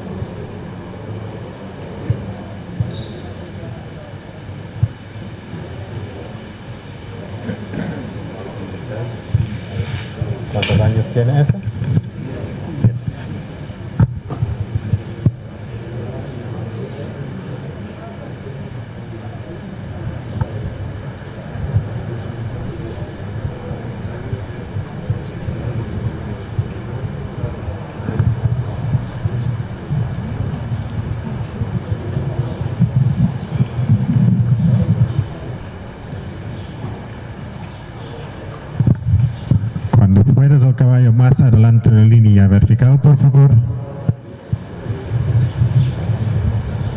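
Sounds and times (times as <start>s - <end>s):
murmured voices: 0.0s - 46.9s
steady low rumble: 0.0s - 46.9s.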